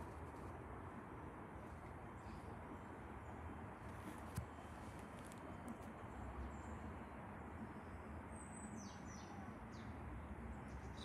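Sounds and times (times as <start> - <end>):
faint outdoor rumble: 0.0 - 11.0
bird chirps: 8.3 - 10.0.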